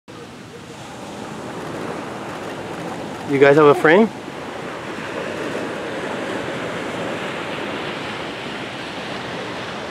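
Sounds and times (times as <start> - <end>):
ocean surf on beach: 0.1 - 9.9.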